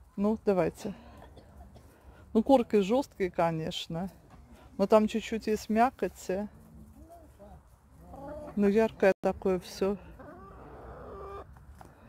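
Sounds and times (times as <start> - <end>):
hens clucking: 6.8 - 9.1, 9.8 - 11.6.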